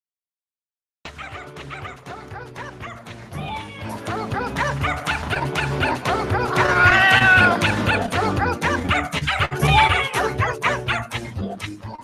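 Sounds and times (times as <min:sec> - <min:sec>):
music: 0:01.1 - 0:12.0
dogs barking and yipping: 0:01.2 - 0:03.1, 0:04.6 - 0:08.2, 0:08.8 - 0:11.2.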